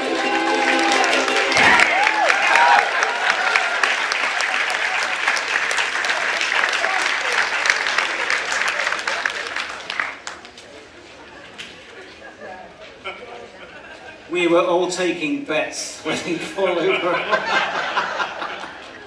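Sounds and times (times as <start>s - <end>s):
audience applauding: 0.0s - 10.8s.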